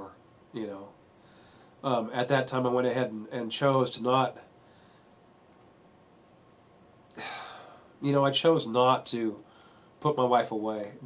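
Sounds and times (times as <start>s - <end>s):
man speaking: 0.0s - 1.0s, 1.8s - 4.5s, 7.2s - 9.4s, 10.0s - 11.0s
man breathing out: 7.2s - 8.0s.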